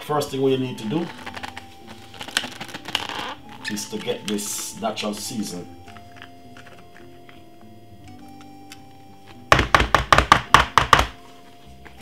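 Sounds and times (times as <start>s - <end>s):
faint background music: 0.0s - 12.0s
plastic cup knocking: 9.5s - 11.2s.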